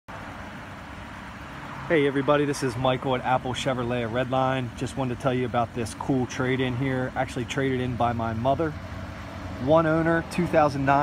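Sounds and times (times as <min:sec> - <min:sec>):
motor vehicle hum and hiss: 0:00.1 - 0:11.0
man's voice: 0:01.9 - 0:08.8, 0:09.6 - 0:11.0.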